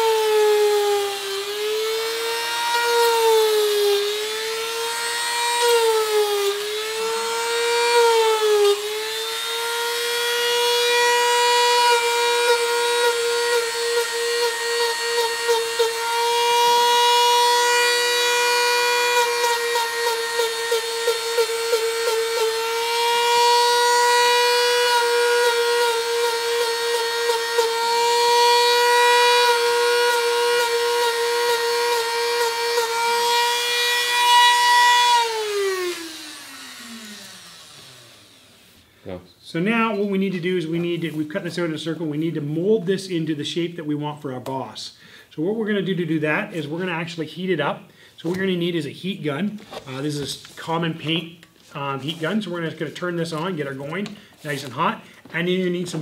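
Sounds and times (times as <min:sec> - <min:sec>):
rotary tool whining: 0:00.0 - 0:38.9.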